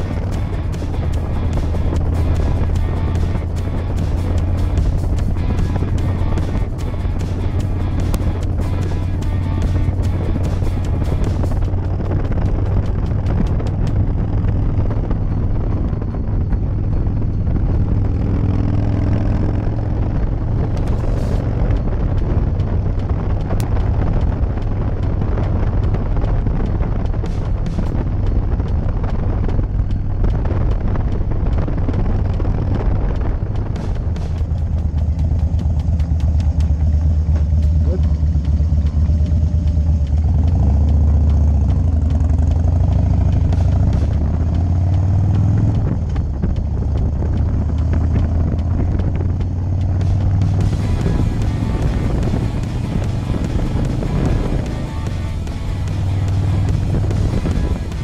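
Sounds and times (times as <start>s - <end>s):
motorcycle engine running: 0.0s - 58.0s
wind noise: 0.0s - 58.0s.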